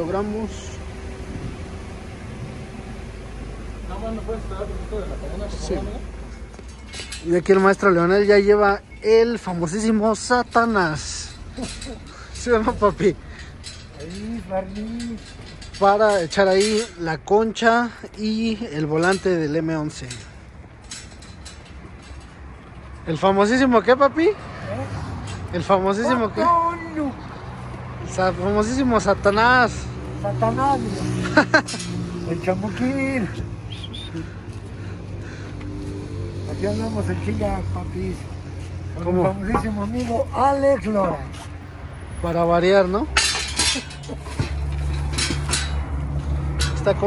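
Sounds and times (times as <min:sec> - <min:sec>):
metallic clinks and knocks: 0:06.3 - 0:09.5, 0:10.2 - 0:23.3, 0:31.3 - 0:32.2, 0:43.1 - 0:47.0
hand truck wheels rumbling: 0:10.1 - 0:23.2, 0:43.0 - 0:47.0
frame clicking and rattling: 0:10.6 - 0:17.2, 0:18.9 - 0:22.8, 0:43.2 - 0:47.0.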